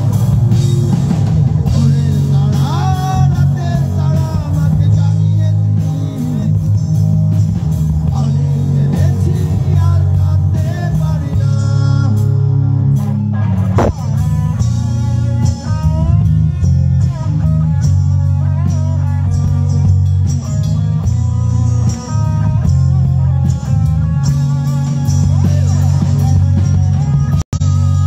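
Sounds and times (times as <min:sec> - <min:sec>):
drums: 0:00.0 - 0:28.0
heavy bass guitar: 0:00.0 - 0:28.0
electric guitar lead line: 0:08.1 - 0:28.0.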